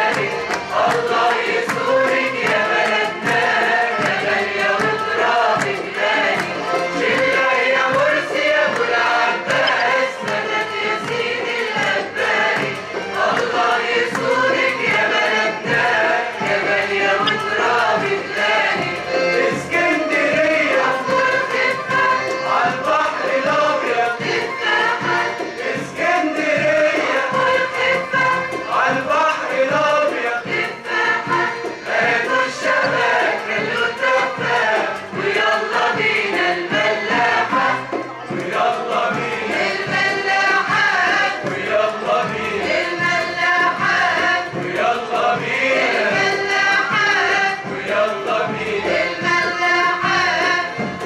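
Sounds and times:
choir singing: 0.0 - 51.0
string and accordion ensemble: 0.0 - 51.0
steady beat: 9.5 - 10.6.

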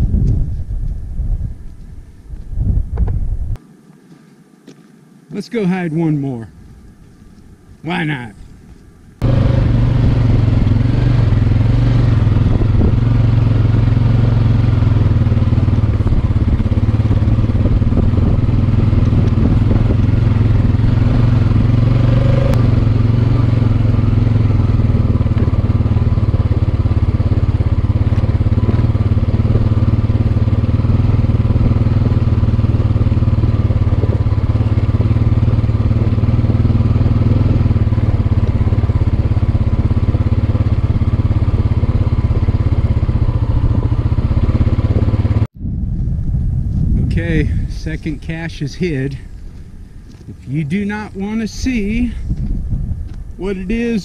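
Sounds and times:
atv engine running: 8.7 - 54.0.

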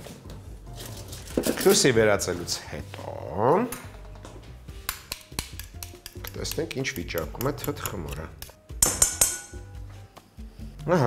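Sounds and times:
background music: 0.0 - 11.0
metal utensil clinking on glass bowl: 5.5 - 9.6
spoon clinking in drinking glass: 5.5 - 9.7.

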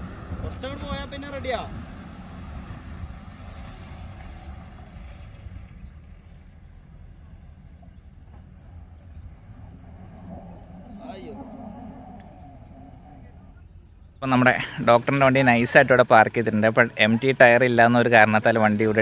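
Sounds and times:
distant engine rumble: 0.0 - 19.0.

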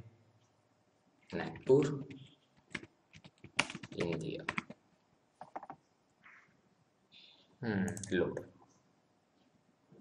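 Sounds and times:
keyboard keys typing: 1.3 - 4.8, 5.4 - 5.8.

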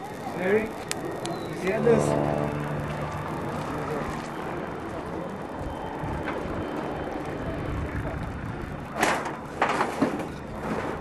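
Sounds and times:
street rumbling noise: 0.0 - 11.0.

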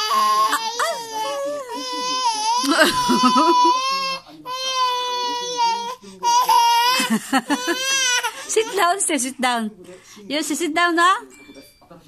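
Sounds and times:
baby crying: 0.0 - 9.0.

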